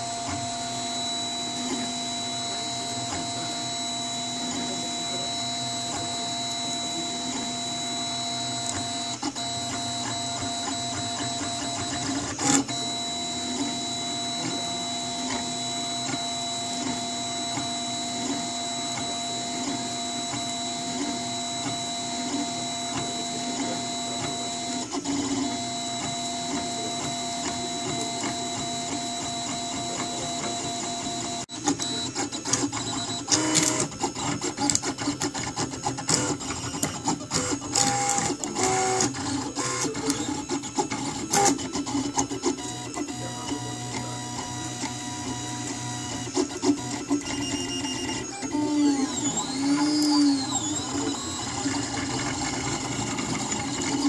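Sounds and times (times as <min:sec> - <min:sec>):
printer motors whining: 0:00.0 - 0:54.0.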